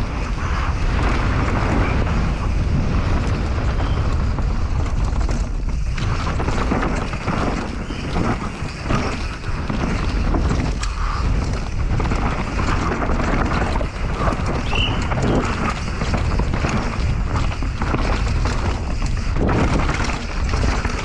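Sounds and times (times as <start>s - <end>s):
bike rattling and knocking: 0.0s - 21.0s
bike tyres rumbling over dirt: 0.0s - 21.0s
wind on microphone: 0.0s - 21.0s.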